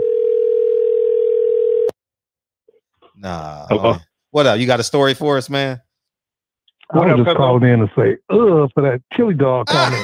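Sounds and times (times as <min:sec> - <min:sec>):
telephone ringback tone: 0:00.0 - 0:01.9.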